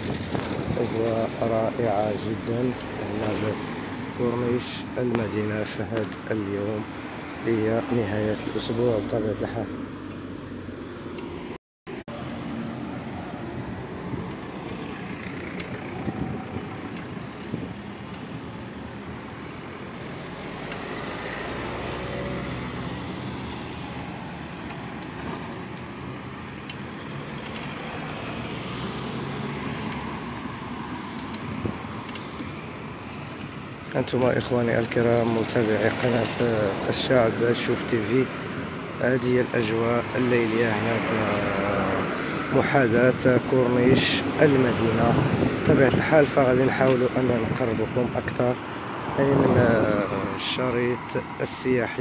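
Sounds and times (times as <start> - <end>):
street traffic rumble: 0.0 - 52.0.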